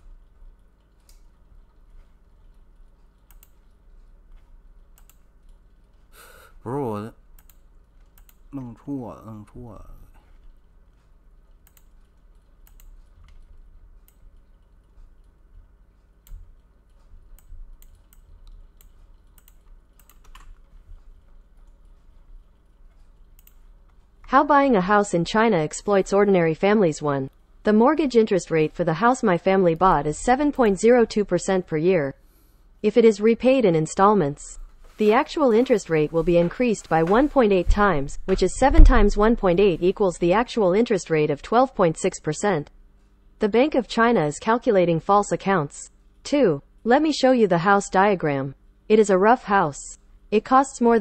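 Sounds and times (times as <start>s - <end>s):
keyboard and mouse clicks: 0.0s - 6.0s, 7.4s - 8.6s, 10.4s - 24.0s
low electrical hum: 0.0s - 51.0s
mouse and keyboard clicks: 3.2s - 3.7s.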